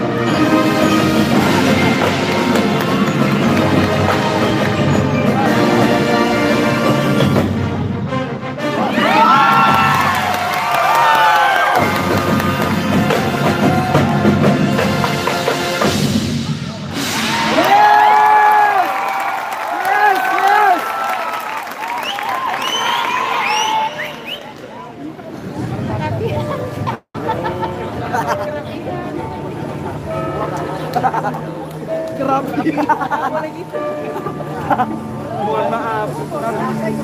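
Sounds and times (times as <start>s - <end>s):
marching band playing: 0.0s - 17.6s.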